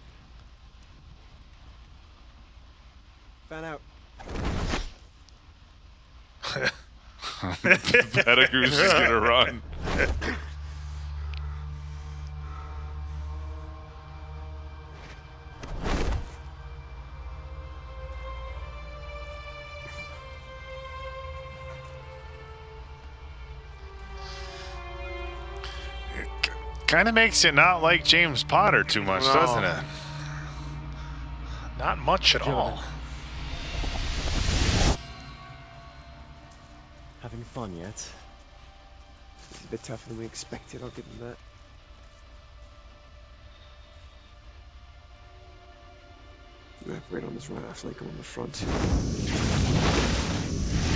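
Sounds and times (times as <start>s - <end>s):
tense film score drone: 0.0s - 50.9s
held string tones: 17.3s - 42.8s
rush of noise: 28.5s - 37.4s, 48.4s - 50.9s.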